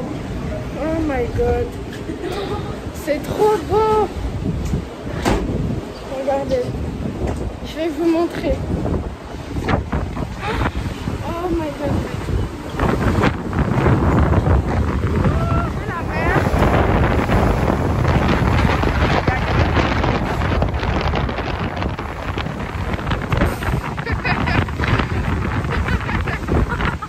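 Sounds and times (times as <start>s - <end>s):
wind buffeting microphone: 0.0s - 27.0s
voices: 15.1s - 17.5s, 18.2s - 20.5s.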